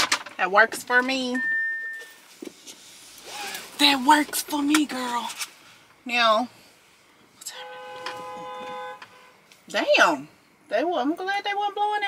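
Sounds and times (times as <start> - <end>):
car horn blast: 7.4 - 9.5.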